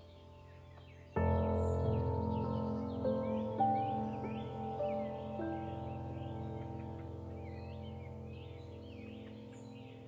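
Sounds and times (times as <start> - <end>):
bird chirps: 0.0 - 10.0
soft ambient music: 0.0 - 10.0.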